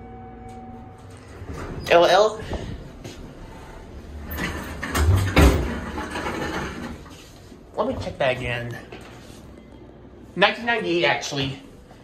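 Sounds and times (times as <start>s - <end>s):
elevator doors sliding: 0.8s - 7.3s.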